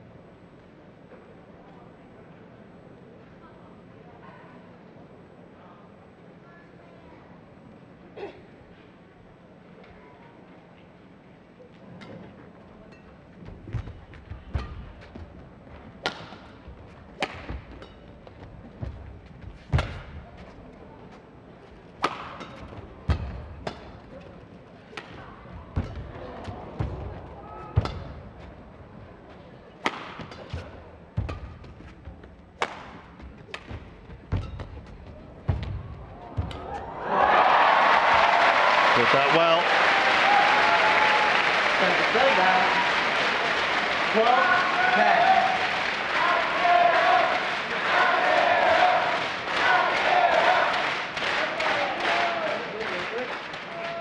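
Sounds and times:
racket striking shuttlecock: 0:16.0 - 0:20.2, 0:22.0 - 0:24.2, 0:24.8 - 0:28.4, 0:29.8 - 0:37.0
crowd cheering and applause: 0:36.1 - 0:54.0.

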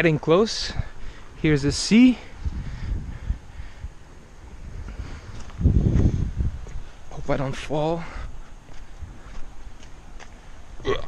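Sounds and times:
wind buffeting microphone: 0:00.0 - 0:10.8.

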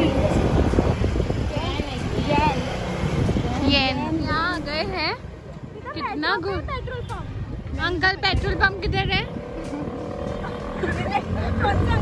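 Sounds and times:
scooter engine and road rumble: 0:00.0 - 0:12.0
wind on microphone: 0:00.0 - 0:12.0.

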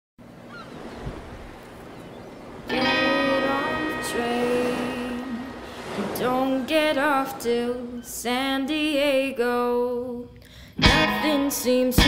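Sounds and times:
faint noisy wash: 0:00.2 - 0:12.0
music with bending held notes: 0:02.7 - 0:05.0, 0:10.8 - 0:12.0.

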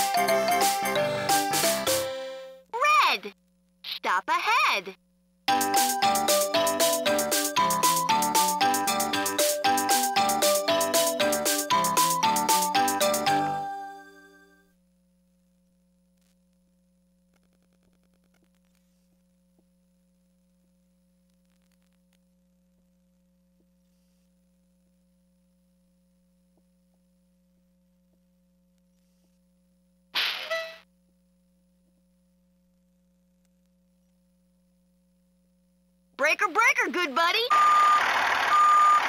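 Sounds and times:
faint steady hum: 0:00.1 - 0:38.0.

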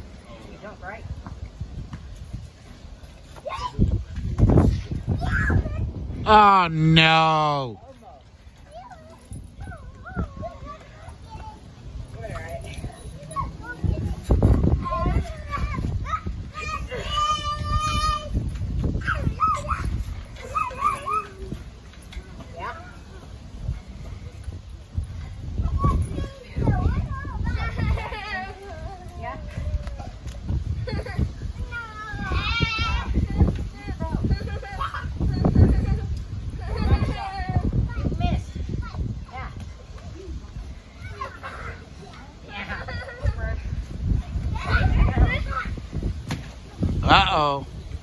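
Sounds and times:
children calling out: 0:14.7 - 0:18.4, 0:19.0 - 0:21.7.

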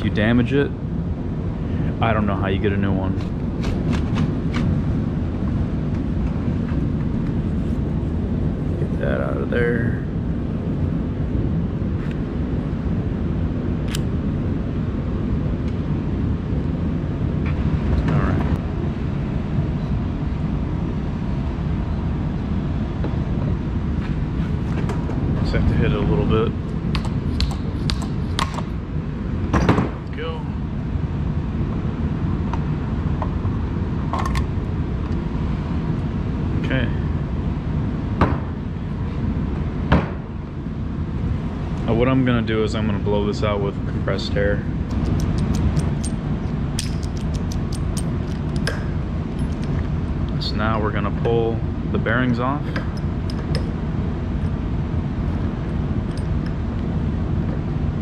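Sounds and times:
steady low rumble: 0:00.0 - 0:58.0
metal tools clicking and knocking: 0:46.8 - 0:49.8.

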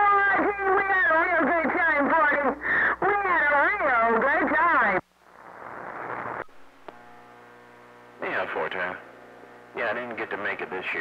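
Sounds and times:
buzzy radio hum: 0:00.0 - 0:11.0
radio static hiss: 0:00.0 - 0:11.0
radio click: 0:05.6 - 0:07.1.

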